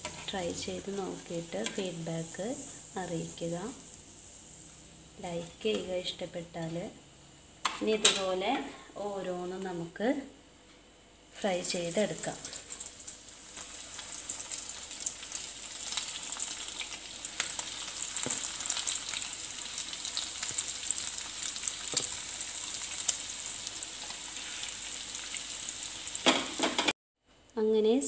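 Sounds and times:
food sizzling in oil: 0.0 - 8.7, 11.4 - 26.9.

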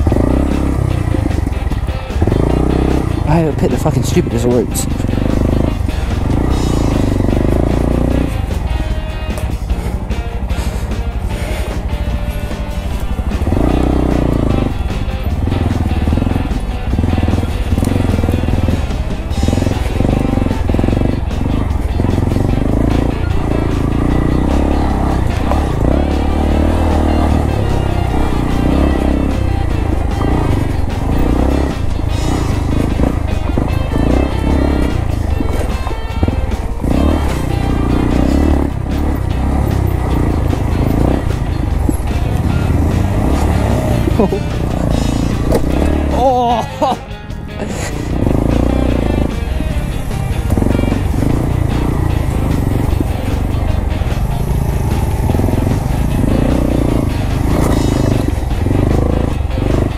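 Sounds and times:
background music: 0.0 - 59.9
motorcycle engine running: 0.0 - 59.9.

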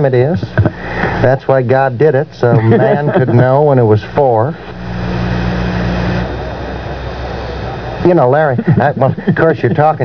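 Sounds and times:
low electrical hum: 0.0 - 10.0
radio static hiss: 0.0 - 10.0.

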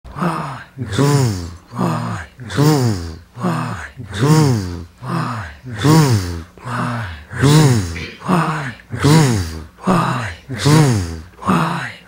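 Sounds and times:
man breathy chanting: 0.1 - 12.0.

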